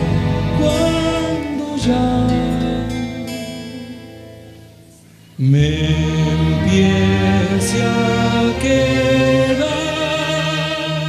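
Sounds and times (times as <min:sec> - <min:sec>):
bowed string chords: 0:00.0 - 0:11.0.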